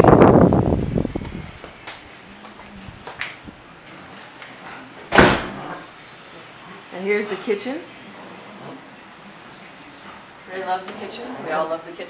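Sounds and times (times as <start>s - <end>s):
sliding door rolling rumble: 2.8s - 5.9s, 10.7s - 11.9s
glass door banging shut: 5.1s - 5.8s.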